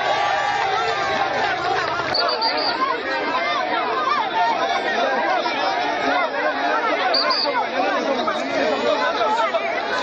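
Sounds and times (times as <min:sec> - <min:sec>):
crowd babble: 0:00.0 - 0:10.0.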